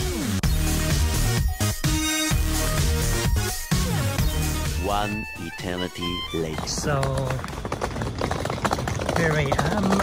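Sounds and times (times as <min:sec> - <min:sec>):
footsteps: 0:05.6 - 0:10.0
suitcase wheels clattering on tiles: 0:06.4 - 0:10.0.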